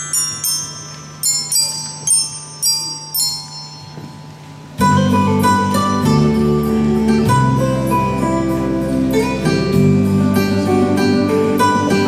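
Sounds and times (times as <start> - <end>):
glockenspiel melody: 0.0 - 12.0.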